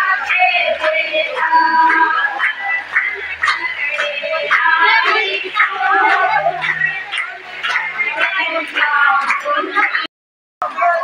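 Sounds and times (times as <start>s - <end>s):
hand claps: 0.0s - 10.1s
women singing together: 0.0s - 11.0s.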